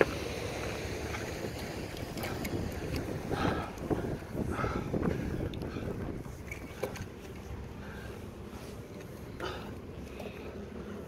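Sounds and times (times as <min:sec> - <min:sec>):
wind buffeting microphone: 0:01.3 - 0:08.1.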